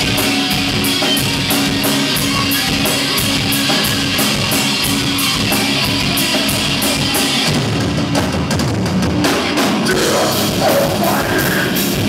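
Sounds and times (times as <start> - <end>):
live heavy metal band: 0.0 - 12.0.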